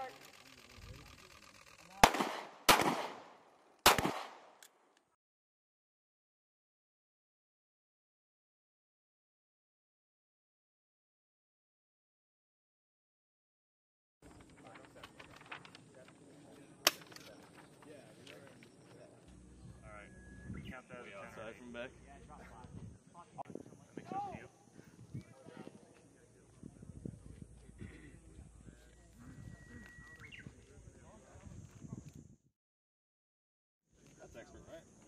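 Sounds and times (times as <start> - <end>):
sharp loud crack: 2.0 - 4.5
pistol shots with echo: 2.0 - 4.6
paper rustling and crinkling: 14.2 - 18.9.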